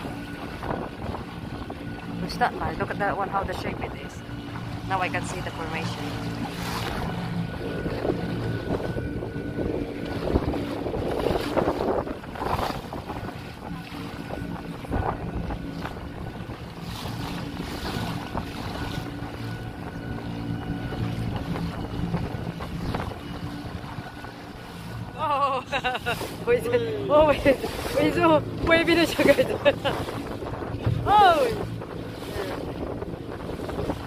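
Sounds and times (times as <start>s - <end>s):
motor boat engine running: 0.0s - 34.0s
water splashing along hull: 0.0s - 34.0s
wind buffeting microphone: 0.0s - 34.0s.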